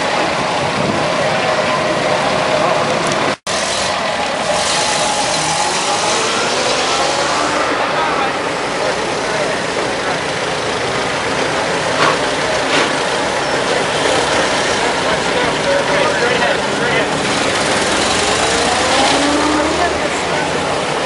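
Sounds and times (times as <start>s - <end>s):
car engines driving past: 0.0s - 21.0s
onlookers chatting: 0.0s - 21.0s.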